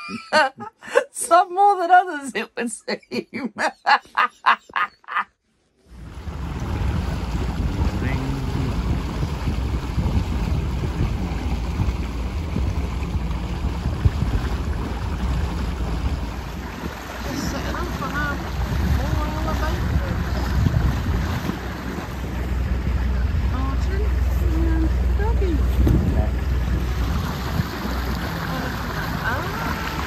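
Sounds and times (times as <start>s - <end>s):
motorboat engine running: 5.8s - 30.0s
water rushing along hull: 5.8s - 30.0s
wind buffeting microphone: 5.9s - 30.0s.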